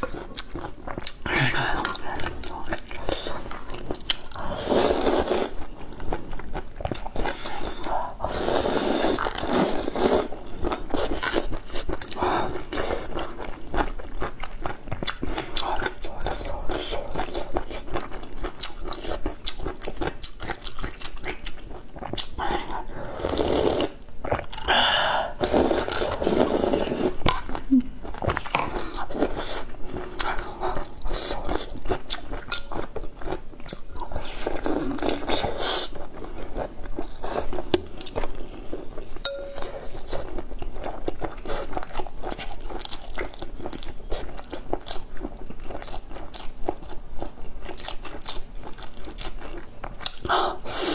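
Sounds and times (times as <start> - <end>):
chewing: 0.0 - 24.7, 25.4 - 50.9
slurping broth: 4.4 - 5.6, 7.2 - 10.3, 23.0 - 24.6, 25.3 - 27.2.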